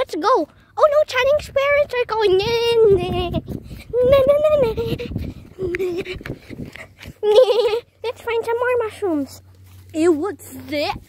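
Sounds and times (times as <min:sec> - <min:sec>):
child laughing: 0:03.8 - 0:08.6.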